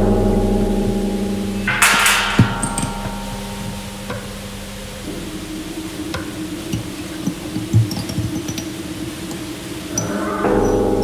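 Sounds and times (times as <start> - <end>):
low steady hum: 0.0 - 11.0
steel cauldron ringing: 0.0 - 11.0
scraping hit on cauldron: 1.6 - 8.5
sharp knock: 1.7 - 4.7.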